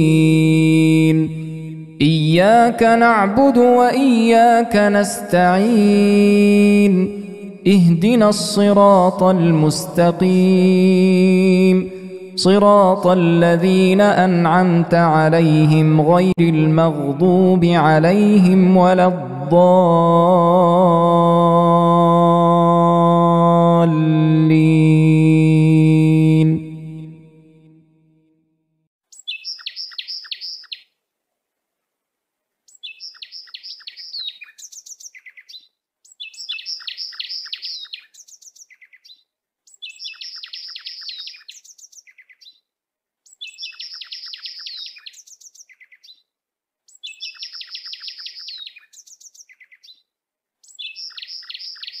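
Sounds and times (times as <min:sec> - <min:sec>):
chanted recitation: 0:00.0 - 0:27.7
bird chirps and trills: 0:29.1 - 0:30.9, 0:32.7 - 0:46.3, 0:46.9 - 0:52.0.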